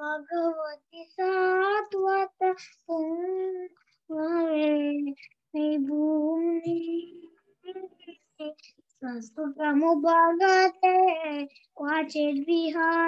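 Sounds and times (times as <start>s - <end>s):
child singing prayer chant: 0.0s - 13.0s.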